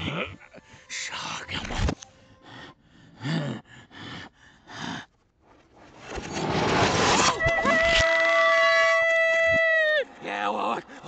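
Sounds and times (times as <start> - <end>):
character voice panting: 2.3 - 5.1.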